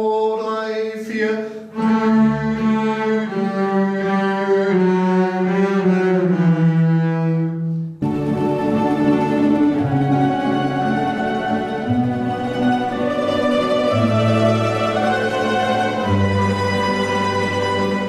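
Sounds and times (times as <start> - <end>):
double basses bowing chords: 1.7 - 18.0.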